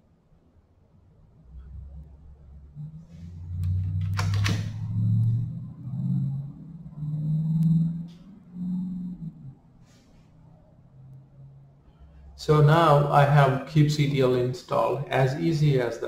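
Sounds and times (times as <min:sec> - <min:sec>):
man humming low notes: 0:01.6 - 0:09.8
keyboard keystrokes: 0:04.0 - 0:04.7.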